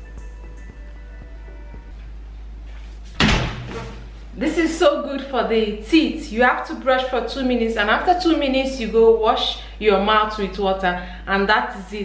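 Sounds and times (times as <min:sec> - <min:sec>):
steady low hum: 0:00.0 - 0:12.0
loud thump with low rumble: 0:03.2 - 0:04.1.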